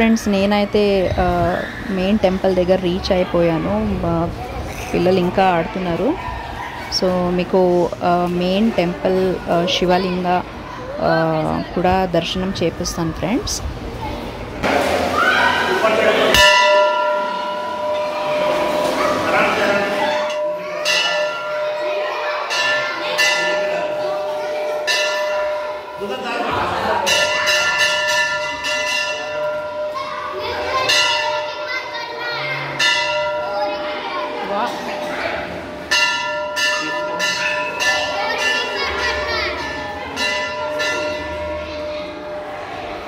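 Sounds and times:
metal bell ringing: 16.3 - 19.1, 19.8 - 26.4, 27.1 - 30.2, 35.9 - 42.2.

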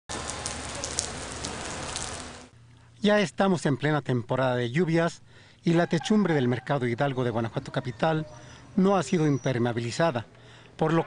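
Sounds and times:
heavy rain on pavement: 0.1 - 2.5.

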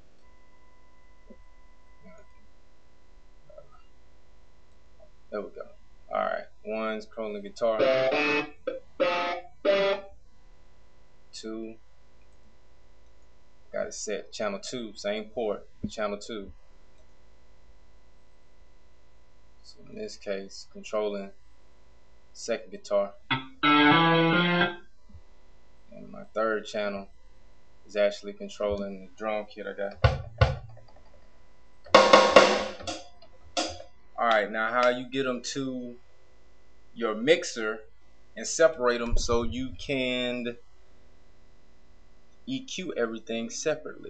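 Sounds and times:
sampled guitar notes: 7.7 - 10.1, 23.3 - 24.8
sampled drum hits: 31.9 - 33.8.

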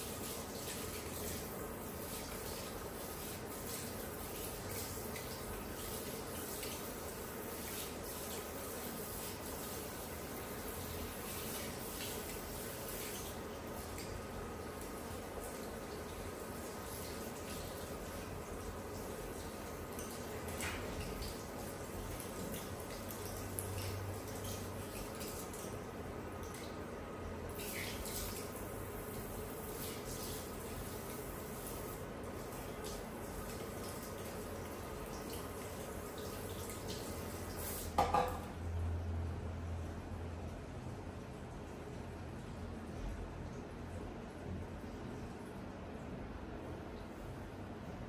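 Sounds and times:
water spraying into sink: 0.0 - 25.7, 27.5 - 38.4.

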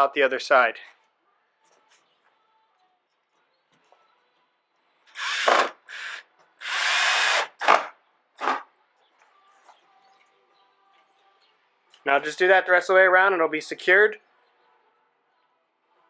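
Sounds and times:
cordless drill driving screw: 5.1 - 8.6.

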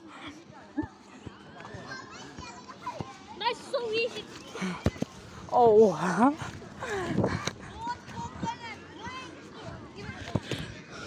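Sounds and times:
children calling and shouting: 0.0 - 11.0.

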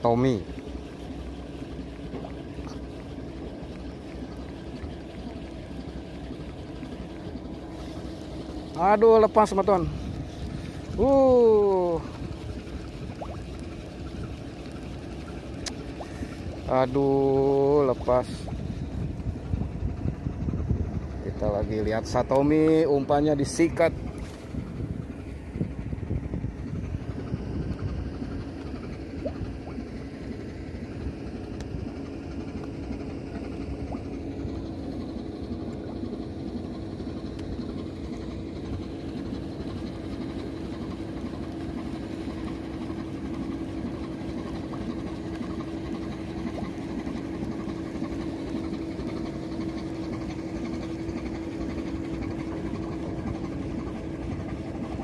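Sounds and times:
large engine running: 0.0 - 55.0.

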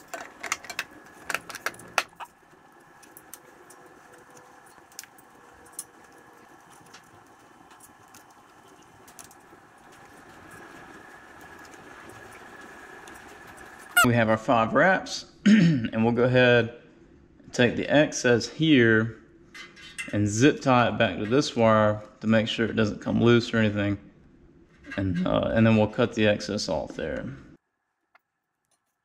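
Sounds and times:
plastic clicks and rattles: 0.0 - 2.2.

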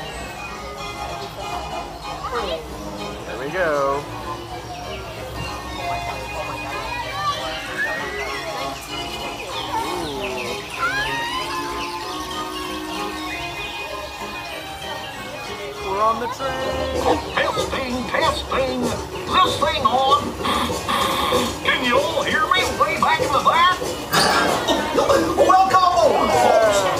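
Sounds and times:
lively cartoon music with voices: 0.1 - 26.9.

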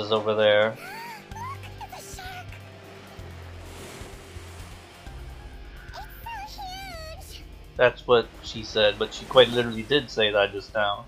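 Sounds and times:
soft hiss: 8.2 - 11.0.

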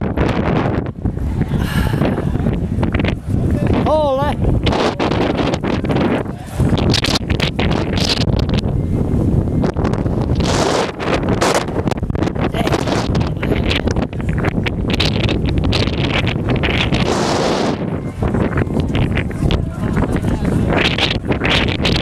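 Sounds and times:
strong wind on microphone: 0.0 - 22.0.

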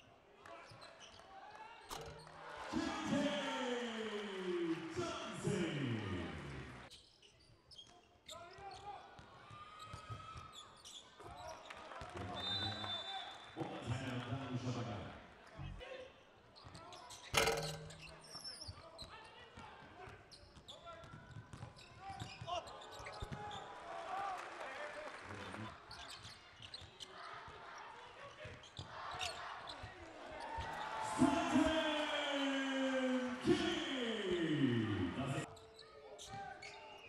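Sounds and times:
voices: 28.9 - 35.5.

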